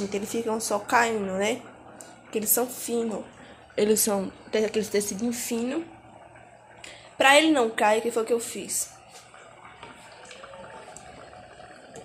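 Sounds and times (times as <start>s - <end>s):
food bubbling in pots: 0.0s - 12.0s.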